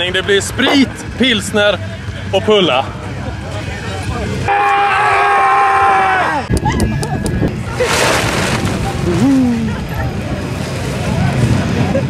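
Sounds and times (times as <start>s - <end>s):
wind rumble on microphone: 6.5s - 12.0s.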